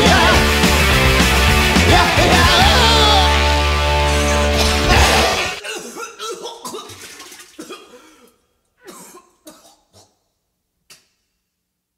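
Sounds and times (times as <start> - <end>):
man coughing: 4.4 - 4.9, 5.6 - 10.2.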